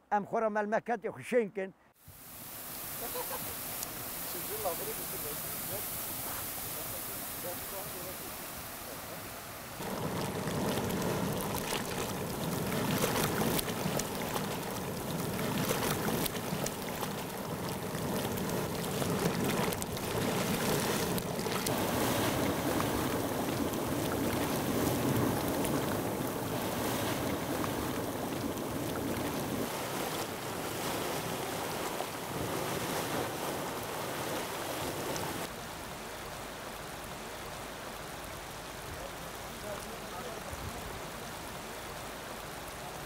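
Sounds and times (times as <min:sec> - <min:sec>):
water flowing and bubbling: 0:02.0 - 0:35.6
wind on microphone: 0:02.8 - 0:35.4.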